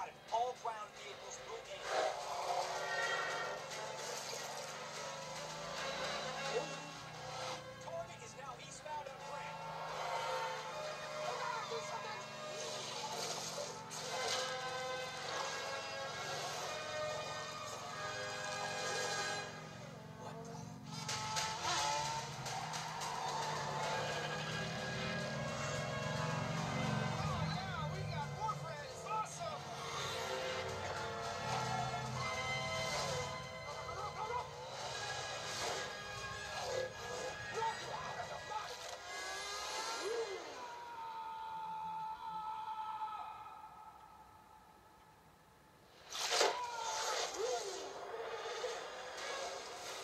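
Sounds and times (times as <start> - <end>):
vehicle engines: 0.0 - 43.6, 45.8 - 50.0
film score music: 0.0 - 50.0.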